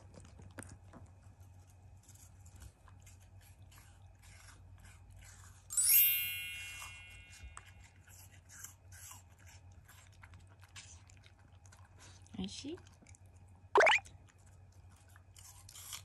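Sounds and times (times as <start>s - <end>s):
dog crunching apple: 0.0s - 6.0s, 6.7s - 16.0s
bright chime: 5.7s - 7.5s.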